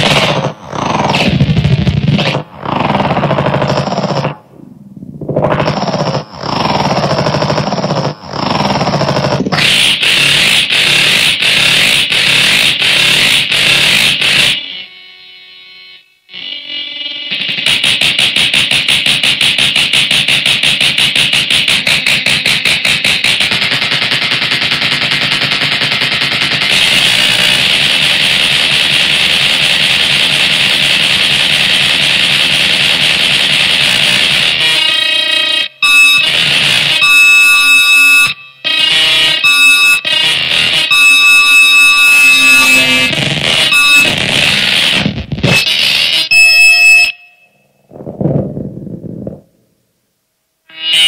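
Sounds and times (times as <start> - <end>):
shrill alarm-like tones: 0.0 - 18.9, 33.8 - 48.4, 50.7 - 51.0
distorted noise music: 0.0 - 50.0, 50.6 - 51.0.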